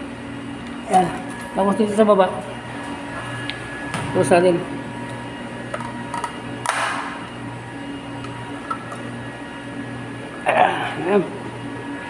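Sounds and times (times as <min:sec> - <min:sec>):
low hum of pumps: 0:00.0 - 0:12.0.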